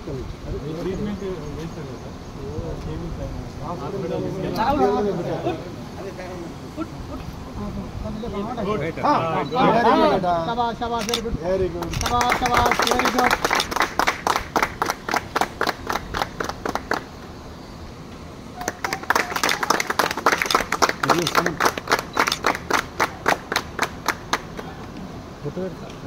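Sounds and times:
voices: 0.0 - 26.0
group of people clapping: 11.8 - 17.2, 18.6 - 25.0.

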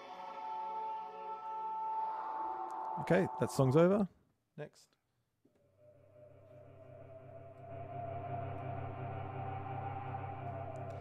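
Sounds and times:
sustained synthesizer chord: 5.7 - 11.0.

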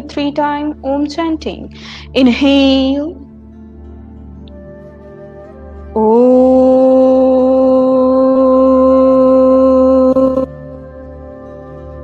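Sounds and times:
soft music of held tones: 0.0 - 12.0
woman chanting: 6.0 - 10.6.

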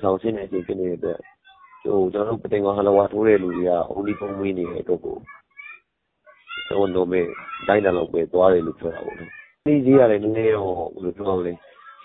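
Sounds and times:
man talking: 0.0 - 1.2, 1.9 - 5.3, 6.7 - 11.7.

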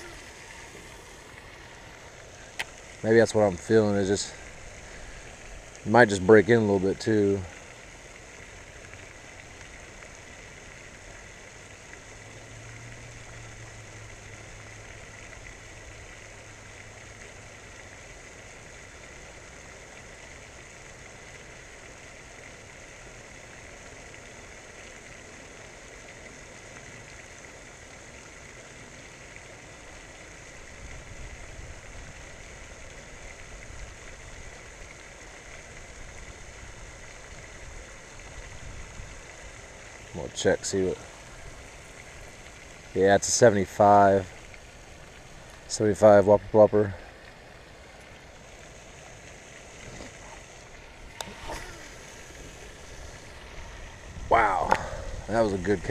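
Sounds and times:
faint outdoor background noise: 0.0 - 55.9
low uneven rumbling: 35.9 - 55.9
low hum: 46.3 - 55.9.

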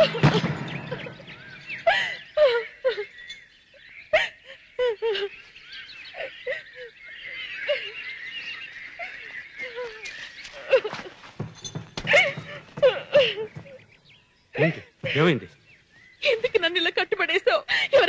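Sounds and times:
high chirping bird chorus: 0.0 - 18.0.

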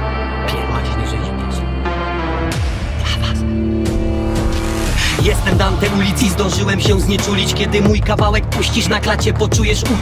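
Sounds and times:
deep bass: 0.0 - 10.0
hip-hop instrumental beat: 0.0 - 10.0.

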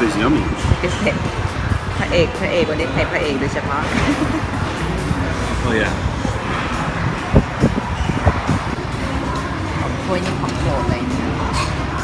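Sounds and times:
dull low thumps: 4.1 - 9.0.

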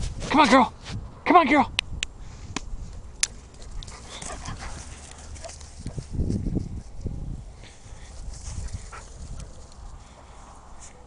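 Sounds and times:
low rustling: 2.3 - 11.0.

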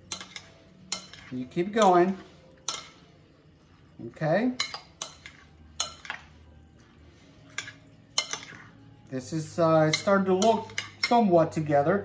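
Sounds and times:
spoon clinking against glass: 0.0 - 2.0, 4.5 - 6.3, 7.5 - 8.7, 9.8 - 11.2
spoon stirring vegetables: 0.0 - 11.6.

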